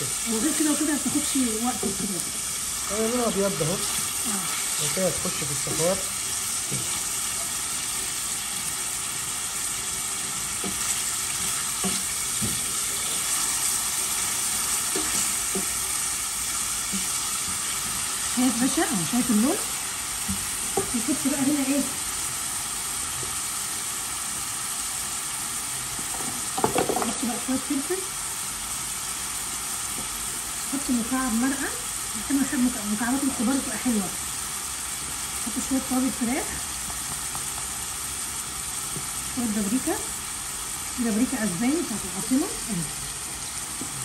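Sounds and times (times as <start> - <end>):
chicken and onion sizzling in oil: 0.0 - 44.0
spatula stirring in pan: 3.8 - 8.5, 9.8 - 18.3.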